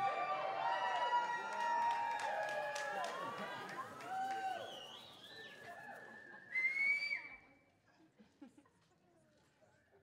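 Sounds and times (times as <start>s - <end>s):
audience whooping: 0.0s - 5.0s
long high whistle: 4.6s - 7.5s.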